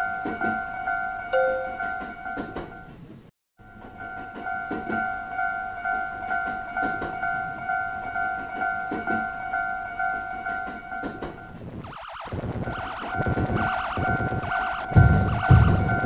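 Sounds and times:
railroad crossing alarm ringing: 0.4 - 2.5, 3.6 - 11.6, 13.1 - 16.0
train wheel clacks: 6.2 - 7.7, 10.1 - 11.5.

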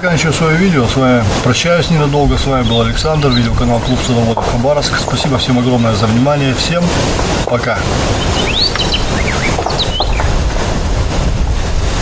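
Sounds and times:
loud steady rushing noise: 0.0 - 12.0
bird chirps: 2.0 - 6.5, 8.1 - 10.6.

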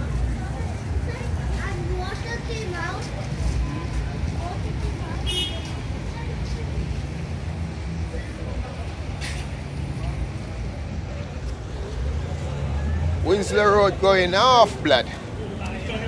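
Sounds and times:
vehicle engines rumbling: 0.0 - 16.0.

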